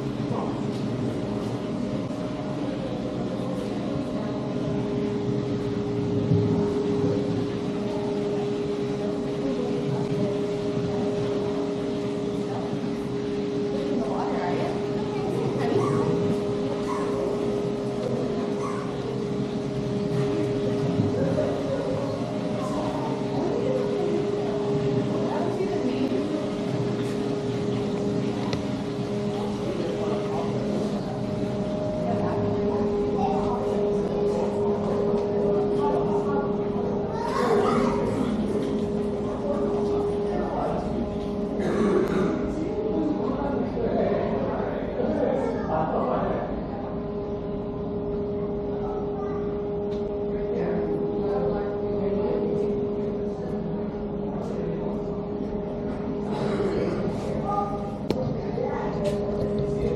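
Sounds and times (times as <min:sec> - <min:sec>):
low machine hum: 0:00.0 - 0:59.9
noisy indoor ambience: 0:00.0 - 0:59.9.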